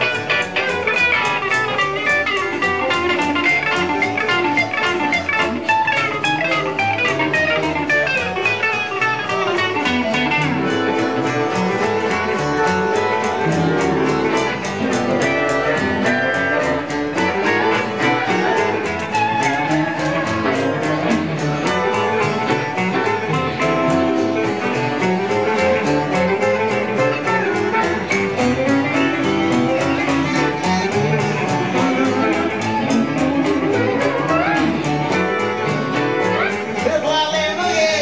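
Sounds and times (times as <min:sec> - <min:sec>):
guitar: 0:00.0 - 0:38.0
upright bass: 0:00.0 - 0:38.0.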